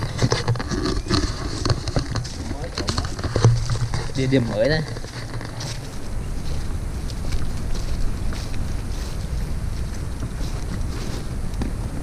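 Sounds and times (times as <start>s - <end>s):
handling knocks and rustles: 0.0s - 6.0s
footsteps on dry leaves: 0.0s - 12.0s.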